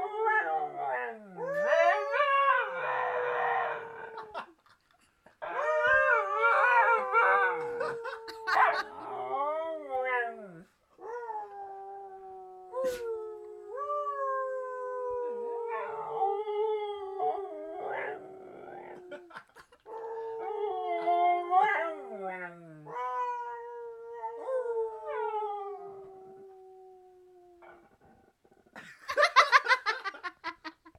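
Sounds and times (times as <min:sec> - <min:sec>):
dog howling: 0:05.5 - 0:11.4.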